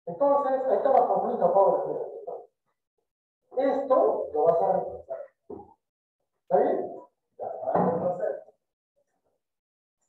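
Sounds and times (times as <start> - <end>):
man speaking loudly: 0.1 - 2.5, 3.5 - 5.3, 6.5 - 8.5.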